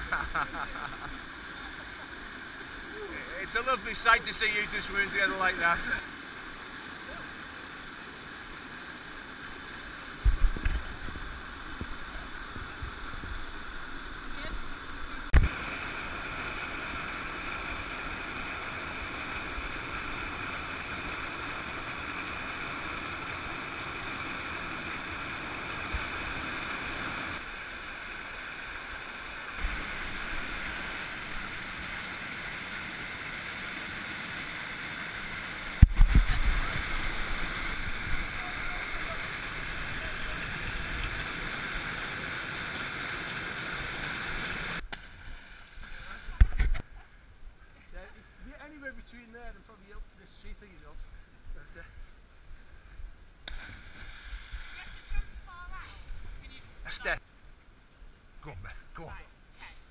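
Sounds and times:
river rapids roaring: 1.0 - 10.2, 13.0 - 44.8.

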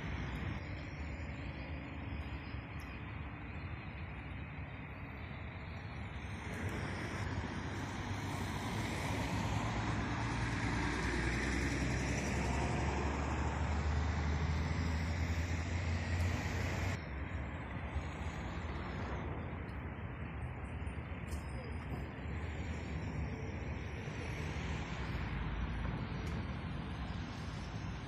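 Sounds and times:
quieter traffic noise: 0.0 - 28.0
vehicle engine drone and tyre noise: 0.0 - 28.0.

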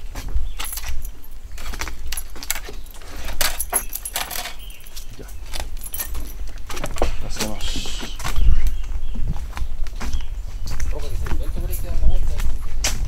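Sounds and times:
wooden gate clicking and rattling: 0.0 - 7.6.

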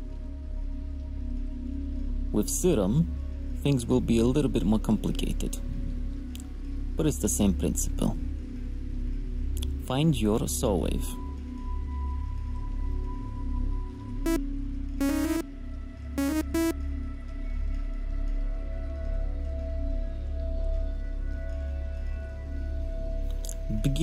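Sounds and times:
bright synthesizer notes: 15.0 - 15.4, 16.2 - 16.8
low synthesizer drone: 15.0 - 15.4, 16.2 - 16.8.

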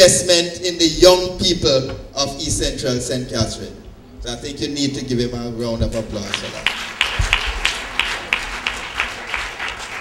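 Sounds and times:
audience applauding: 6.2 - 10.0.

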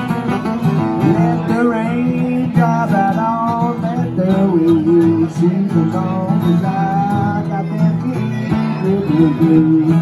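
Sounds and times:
acoustic guitars playing blues: 0.0 - 10.0.

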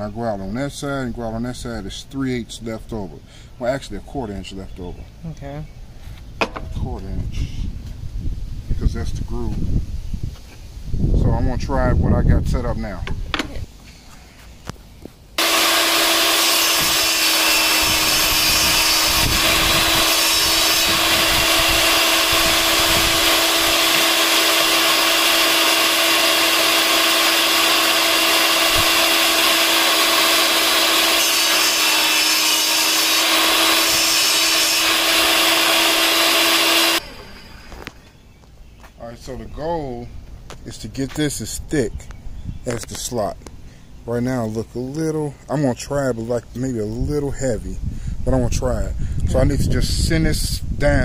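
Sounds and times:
table saw cutting wood: 15.4 - 38.0.

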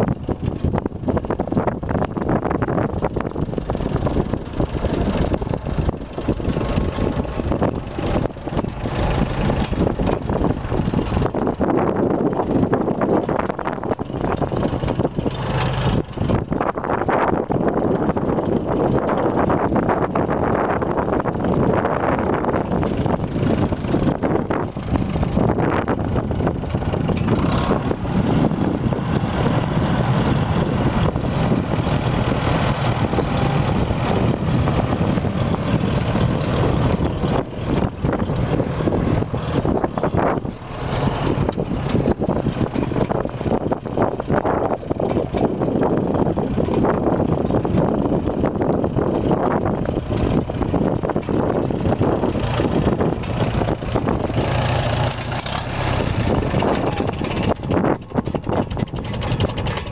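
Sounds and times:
tractor engine running: 0.0 - 59.9.

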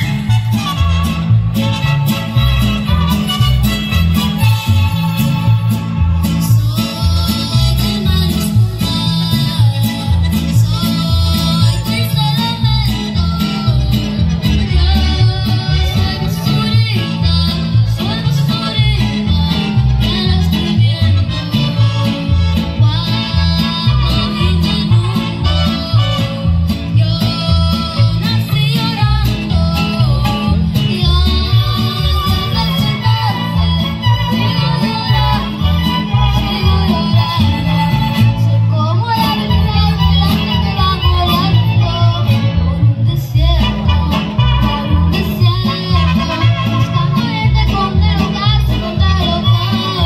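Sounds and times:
latin backing track: 0.0 - 50.0
girl singing into microphone: 43.0 - 50.0.

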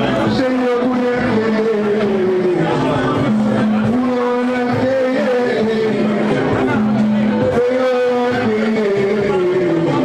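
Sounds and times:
amplified live music: 0.0 - 10.0
person singing long notes: 0.4 - 10.0.

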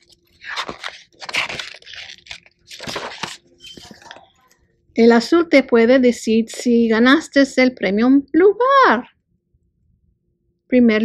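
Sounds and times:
paper pages rustling: 0.0 - 4.4.

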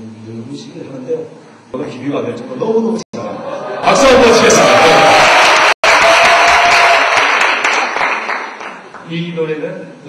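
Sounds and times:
audience applauding: 3.9 - 9.0.

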